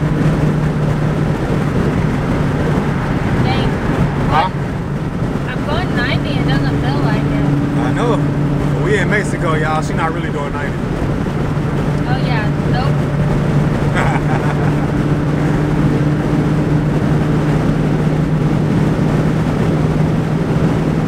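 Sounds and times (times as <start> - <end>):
car engine drone: 0.0 - 21.0
tyre and road rumble: 0.0 - 21.0.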